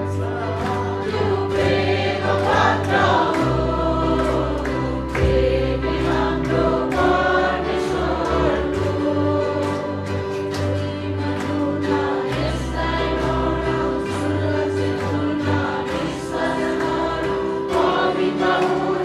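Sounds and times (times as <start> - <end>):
women singing in unison: 0.0 - 19.0.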